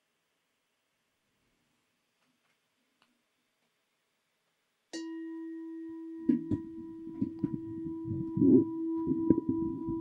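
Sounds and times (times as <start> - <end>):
meditation bell ringing: 4.9 - 10.0.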